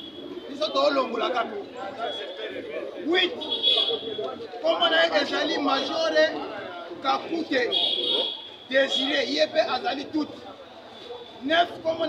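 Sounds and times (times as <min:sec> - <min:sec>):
man speaking: 0:04.6 - 0:10.4, 0:11.4 - 0:12.0.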